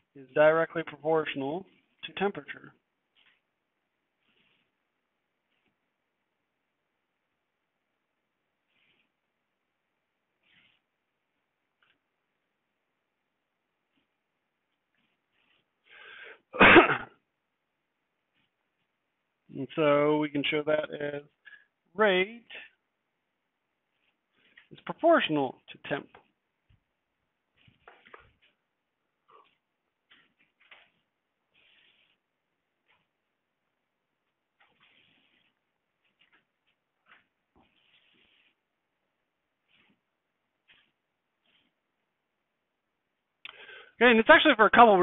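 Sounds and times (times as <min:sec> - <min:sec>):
man inhaling: 0:15.9 - 0:16.4
man clearing throat: 0:16.6 - 0:17.2.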